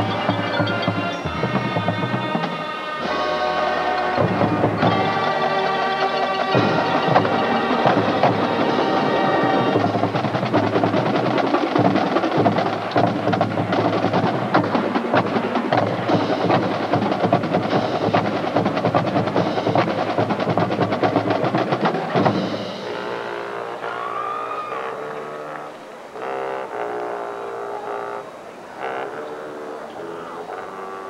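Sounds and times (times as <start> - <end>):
marching drums: 0.0 - 24.6
brass chords: 0.0 - 31.0.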